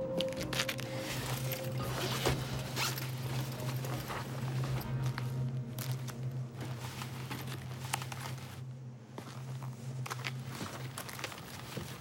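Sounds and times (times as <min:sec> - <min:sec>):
steady low hum: 0:01.1 - 0:12.0.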